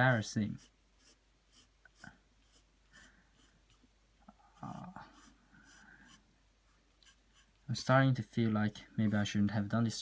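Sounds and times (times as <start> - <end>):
pencil scratching on paper: 0.0 - 3.8, 4.6 - 7.6.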